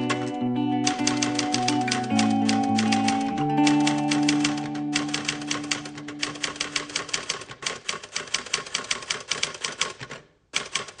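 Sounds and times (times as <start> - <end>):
typewriter keys clacking: 0.0 - 11.0.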